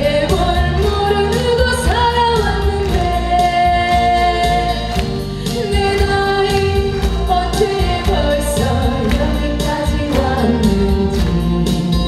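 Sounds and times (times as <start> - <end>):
accompaniment with steady beat: 0.0 - 12.0
woman singing into a microphone: 0.0 - 12.0.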